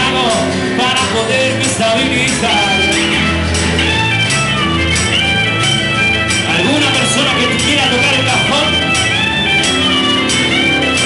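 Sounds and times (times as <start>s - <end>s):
acoustic guitar: 0.0s - 11.0s
bass guitar: 0.0s - 11.0s.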